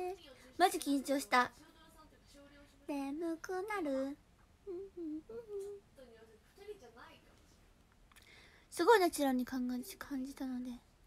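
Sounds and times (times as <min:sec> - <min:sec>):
woman humming softly: 0:04.6 - 0:05.9.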